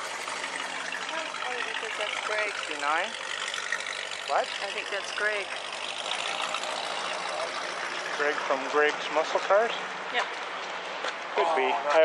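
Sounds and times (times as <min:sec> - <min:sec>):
car engine running: 0:00.0 - 0:10.6.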